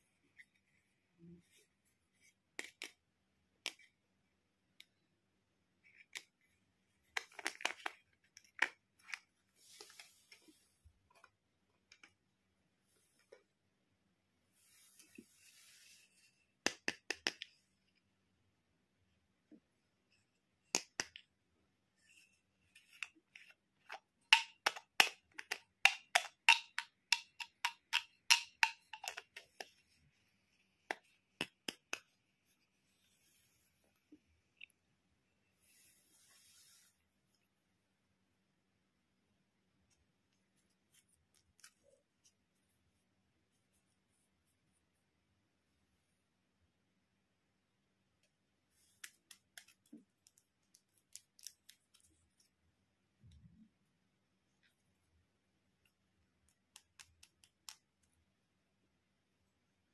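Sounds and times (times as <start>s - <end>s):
plastic clicks and taps: 23.0s - 29.8s
faint rubbing: 35.6s - 37.1s.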